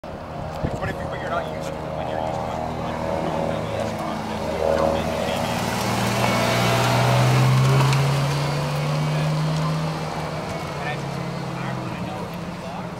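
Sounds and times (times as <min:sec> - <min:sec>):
car engine passing by: 0:00.4 - 0:12.9.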